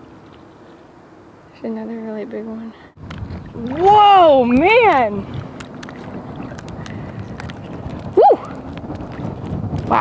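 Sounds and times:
water: 0.0s - 10.0s
wind: 0.0s - 10.0s.

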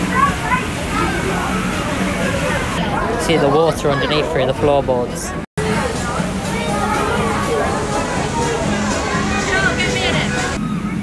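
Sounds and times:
people's voices: 0.0s - 11.0s
water rushing and sloshing: 0.0s - 11.0s.

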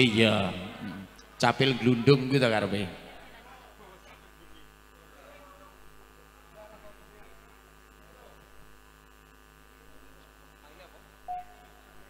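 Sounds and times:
electrical mains hum and buzz: 0.0s - 12.0s.

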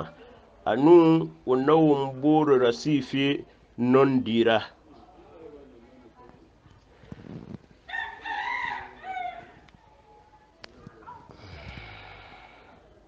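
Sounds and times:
rooster crowing: 7.9s - 9.6s.

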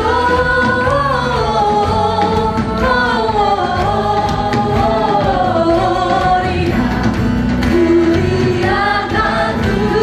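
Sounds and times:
choir singing a hymn: 0.0s - 10.0s
live band accompaniment: 0.0s - 10.0s
woman singing lead: 0.0s - 10.0s.

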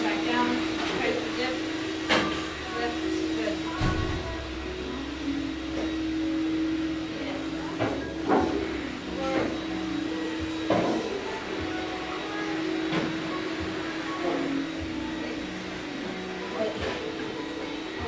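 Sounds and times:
steady hum: 0.0s - 18.0s.

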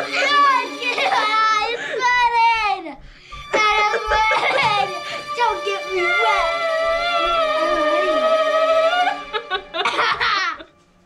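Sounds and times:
child wailing: 0.0s - 2.0s, 3.5s - 10.7s.

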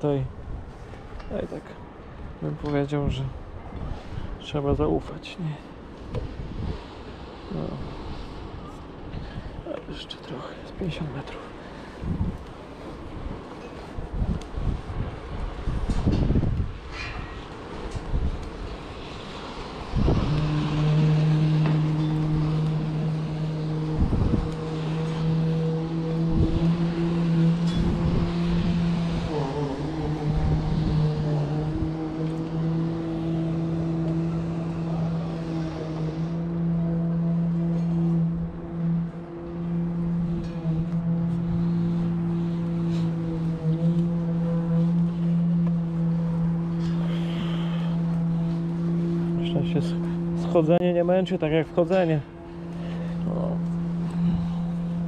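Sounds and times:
steady machine hum: 17.6s - 55.0s.

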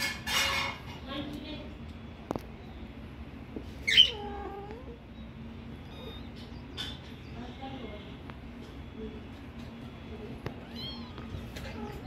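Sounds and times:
kitten crying and mewing: 3.8s - 5.1s, 5.7s - 6.4s, 9.8s - 12.0s.

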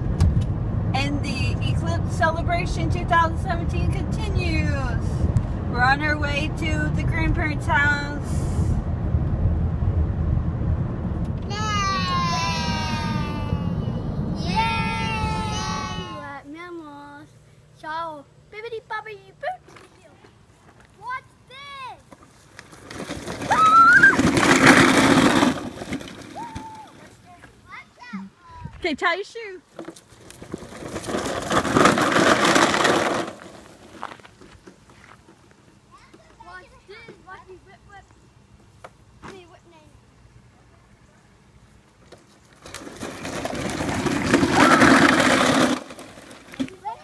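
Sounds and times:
plastic wheels rolling on grass: 9.0s - 16.8s, 19.7s - 27.7s, 29.7s - 37.4s, 41.8s - 47.0s
child calling: 11.5s - 16.5s, 26.4s - 28.7s.

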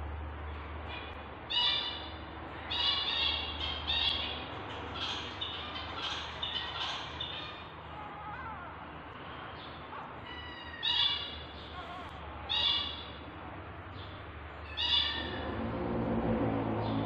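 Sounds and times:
kittens mewing: 10.1s - 13.2s.

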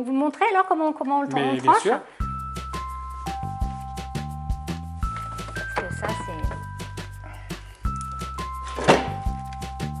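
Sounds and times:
electronic background music: 2.2s - 10.0s.

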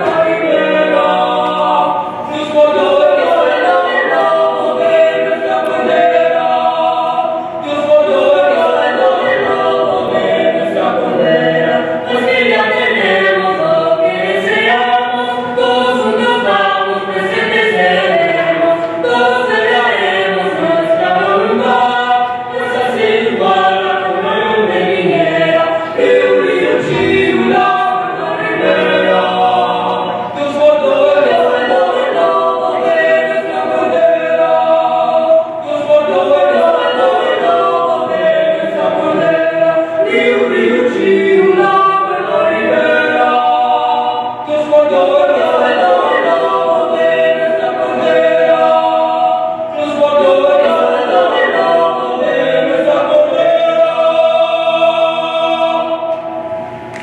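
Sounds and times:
vocal quartet singing unaccompanied: 0.0s - 57.0s.

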